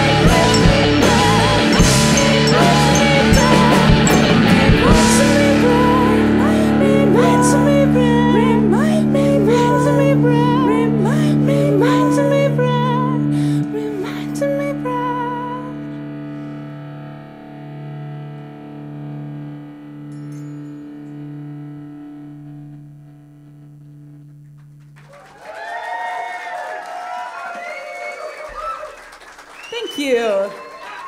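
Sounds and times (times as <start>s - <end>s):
band holding final chord: 0.0s - 8.2s
audience cheering and applauding: 24.8s - 31.0s.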